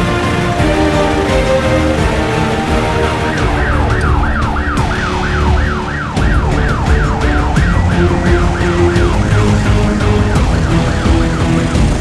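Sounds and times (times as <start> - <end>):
ambulance siren wailing: 0.0 - 12.0
low traffic rumble: 0.0 - 12.0.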